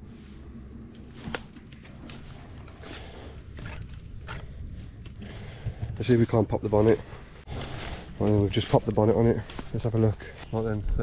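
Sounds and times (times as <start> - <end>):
footsteps through long grass: 0.0 - 11.0
bird chirps: 3.1 - 5.0.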